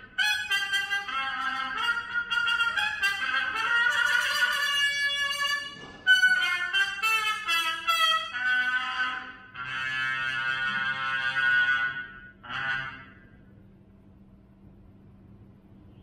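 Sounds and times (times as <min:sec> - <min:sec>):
solo trumpet: 0:00.0 - 0:13.5.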